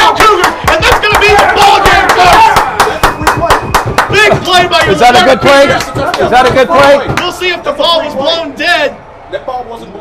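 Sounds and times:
rapid sharp claps: 0.0 - 7.4
excited shouting: 0.0 - 8.9.

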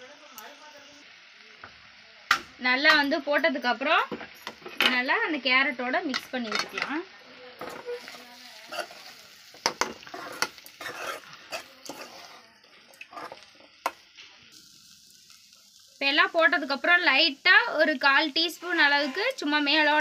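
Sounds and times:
spoon scraping metal pan: 7.6 - 14.0, 18.8 - 19.5.

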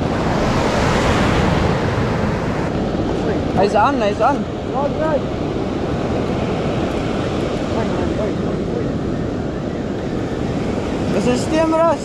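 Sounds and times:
surf breaking on a beach: 0.0 - 12.0
wind buffeting microphone: 0.0 - 12.0.

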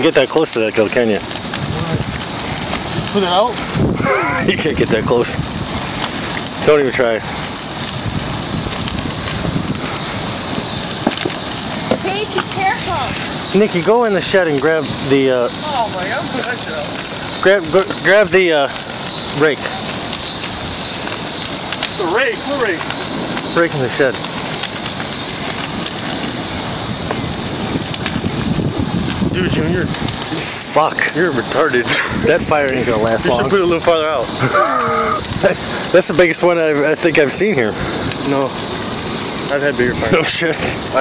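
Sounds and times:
bonfire flames rushing: 0.0 - 41.0
fire crackles: 0.0 - 41.0
wind buffeting microphone: 0.7 - 41.0.

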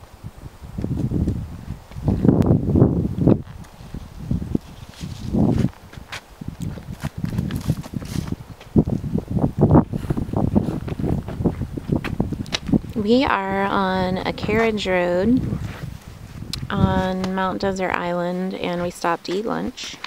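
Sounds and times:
footsteps through dry grass: 3.4 - 9.0.

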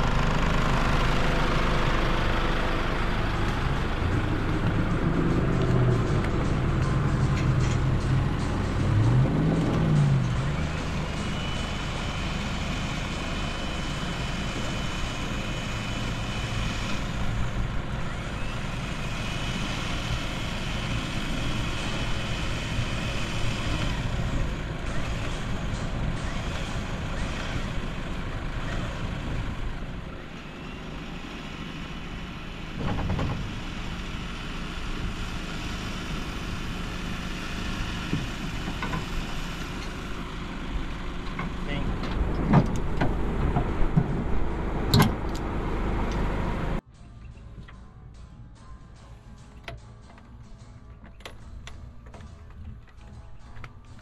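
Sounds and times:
motor whine: 2.9 - 41.5
knocks and clatters: 32.8 - 33.6.

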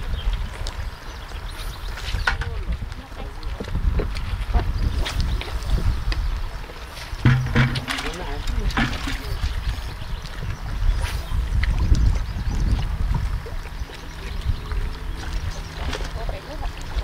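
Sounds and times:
river water lapping: 0.0 - 17.0
wind rumble on microphone: 0.0 - 17.0.

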